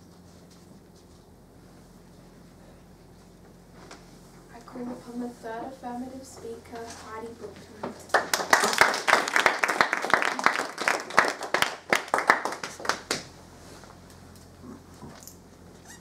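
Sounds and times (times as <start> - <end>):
audience clapping: 8.1 - 13.3.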